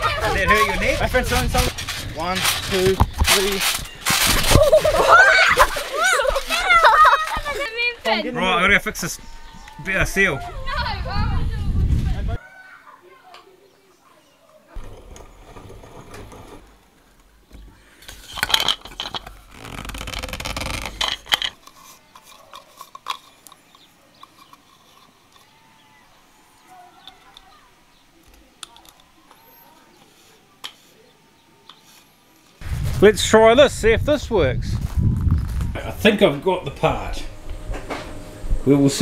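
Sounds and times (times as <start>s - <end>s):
plastic parts clicking: 17.2s - 25.6s, 28.2s - 29.4s
rushes of noise: 32.6s - 39.0s.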